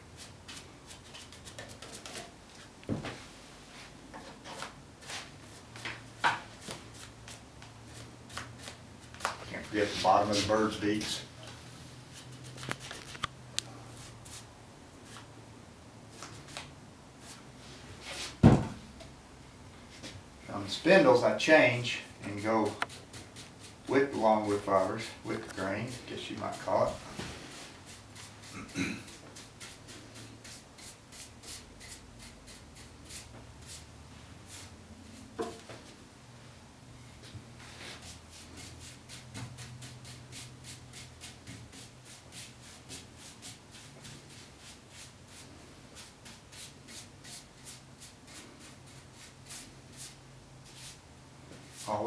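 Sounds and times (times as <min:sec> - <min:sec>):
paintbrush swishing: 0:06.9 - 0:10.7, 0:37.6 - 0:51.0.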